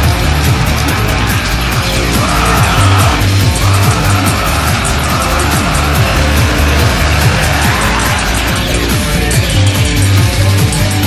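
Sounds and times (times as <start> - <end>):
fast kick drum: 0.0 - 11.0
rolling bass: 0.0 - 11.0.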